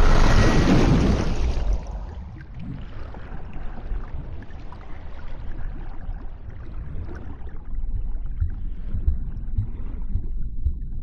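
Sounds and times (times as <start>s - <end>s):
turbulent water rushing: 0.0s - 2.1s
muffled underwater gurgle: 0.0s - 11.0s.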